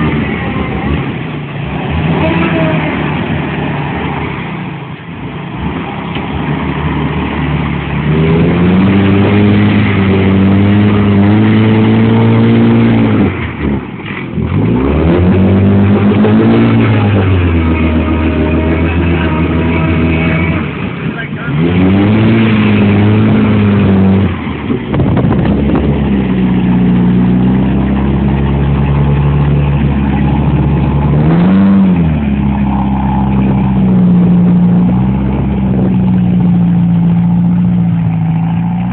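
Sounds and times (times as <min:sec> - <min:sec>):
car engine revving in mud: 0:00.0 - 0:38.9.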